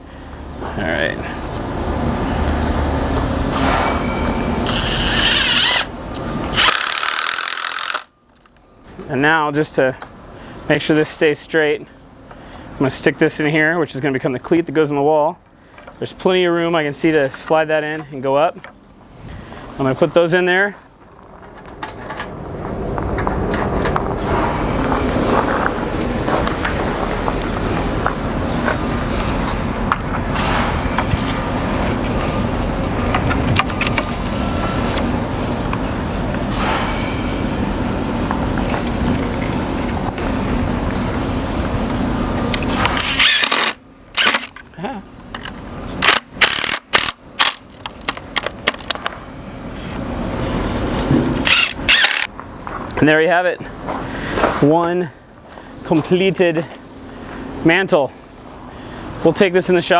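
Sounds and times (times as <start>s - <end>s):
steady noisy rumble: 0.0s - 59.9s
impact driver driving screws: 4.7s - 5.9s, 6.6s - 8.1s, 43.0s - 44.5s, 46.0s - 47.6s, 51.4s - 52.3s.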